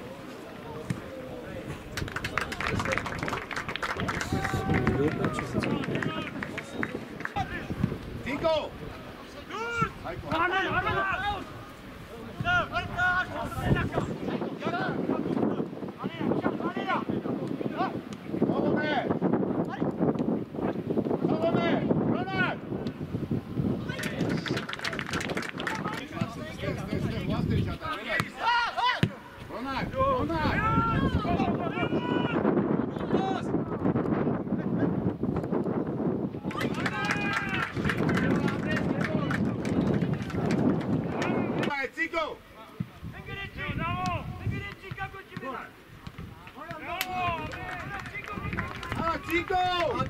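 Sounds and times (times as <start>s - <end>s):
players shouting: 4.0s - 8.5s, 9.3s - 14.0s, 27.9s - 33.5s, 36.4s - 39.4s.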